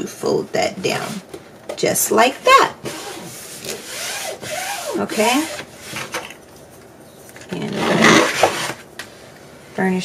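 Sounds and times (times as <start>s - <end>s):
hands rubbing paper: 2.9s - 6.0s.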